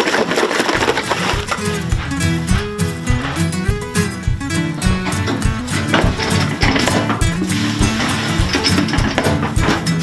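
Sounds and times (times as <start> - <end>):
milk splashing into metal bucket: 0.0 - 1.8
acoustic guitar music: 0.6 - 10.0.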